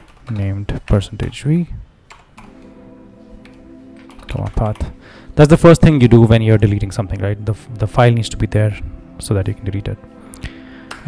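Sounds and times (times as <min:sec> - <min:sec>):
keyboard key clicks: 0:02.1 - 0:02.7.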